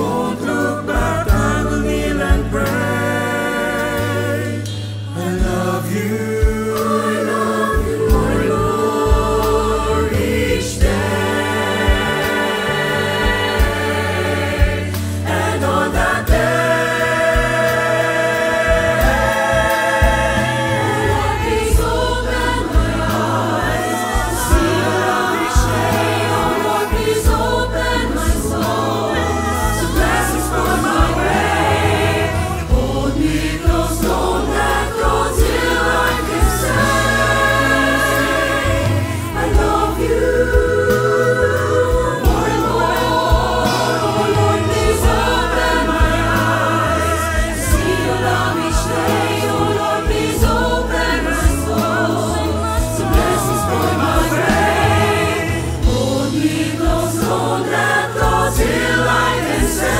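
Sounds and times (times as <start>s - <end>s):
choir singing worship song: 0.0s - 59.9s
instrumental accompaniment: 0.0s - 59.9s
steady bass line: 0.0s - 59.9s.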